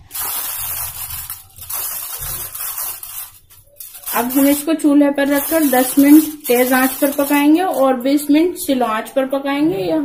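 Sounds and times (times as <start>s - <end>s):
aluminium foil crinkling: 0.0s - 8.4s.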